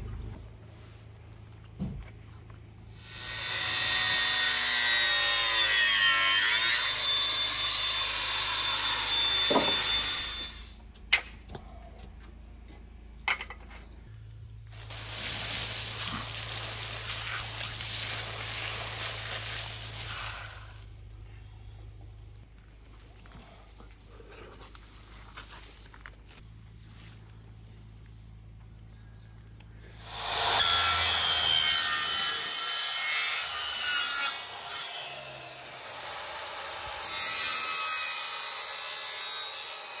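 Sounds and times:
angle grinder cutting tube: 0:03.0 - 0:10.8, 0:30.0 - 0:40.0.

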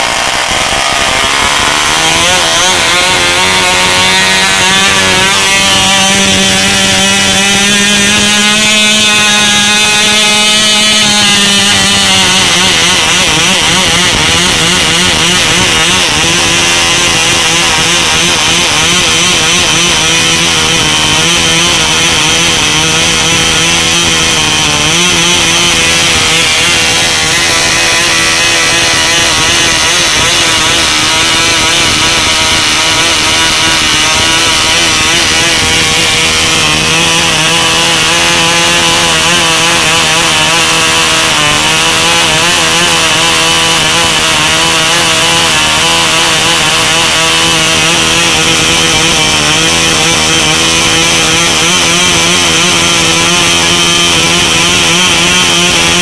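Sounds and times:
model engine high buzz: 0:00.0 - 0:56.0.

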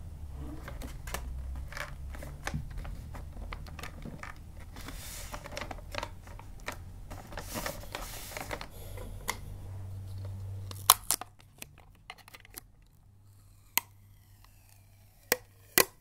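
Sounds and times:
wrapping paper rustling: 0:00.6 - 0:08.7.

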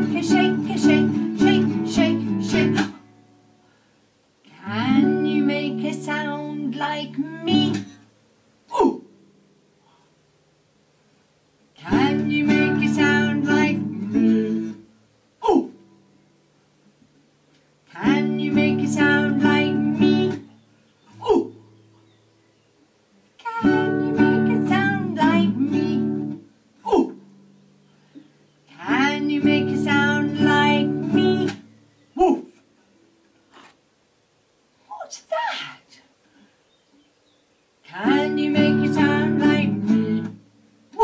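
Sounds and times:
woman singing: 0:00.0 - 0:03.1, 0:04.5 - 0:08.0, 0:11.8 - 0:14.8, 0:17.9 - 0:20.5, 0:23.4 - 0:26.4, 0:28.7 - 0:31.7, 0:37.9 - 0:40.4
classical guitar strummed: 0:00.0 - 0:03.5, 0:04.6 - 0:08.0, 0:11.8 - 0:14.9, 0:17.9 - 0:20.5, 0:23.5 - 0:26.5, 0:28.8 - 0:31.7, 0:38.0 - 0:40.5
falling vocal whoo sounds: 0:08.7 - 0:09.1, 0:15.4 - 0:15.8, 0:21.1 - 0:21.6, 0:26.8 - 0:27.2.

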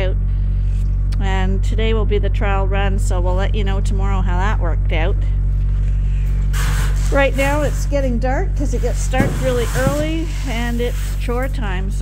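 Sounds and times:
low machine hum: 0:00.0 - 0:12.0
rustling noise: 0:08.6 - 0:11.6.

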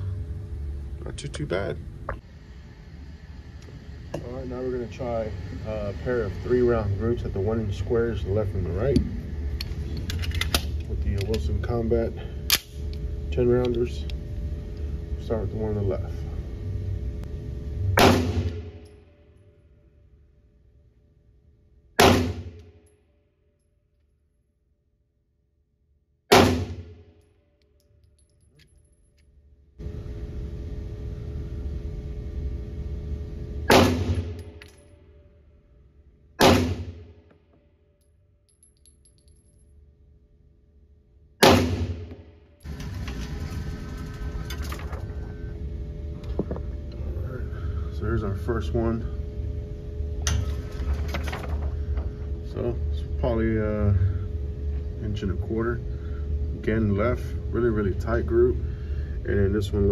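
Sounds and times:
ventilation hum: 0:00.0 - 0:59.9
pistol shots with echo: 0:18.0 - 0:18.6, 0:22.0 - 0:22.4, 0:26.3 - 0:26.8, 0:33.7 - 0:34.3, 0:36.4 - 0:36.9, 0:41.4 - 0:42.1.

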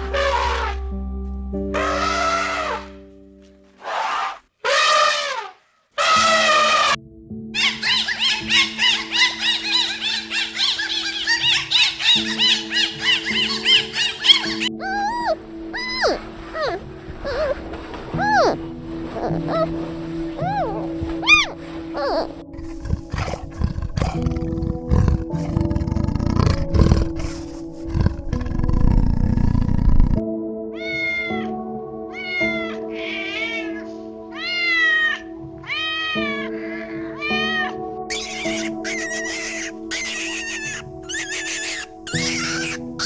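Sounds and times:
background music: 0:00.0 - 0:43.0
kitten meowing: 0:14.3 - 0:17.6, 0:18.2 - 0:18.6, 0:20.4 - 0:22.3, 0:30.8 - 0:31.5, 0:32.1 - 0:42.8.

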